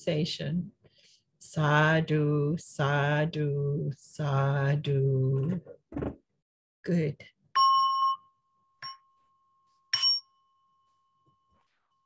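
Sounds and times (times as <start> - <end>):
small bell ringing: 7.6 - 10.9.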